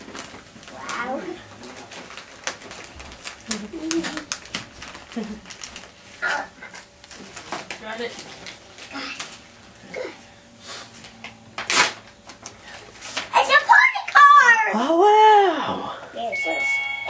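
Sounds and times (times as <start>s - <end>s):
paper rustling: 0.0s - 9.4s
steady high tone: 16.2s - 17.0s.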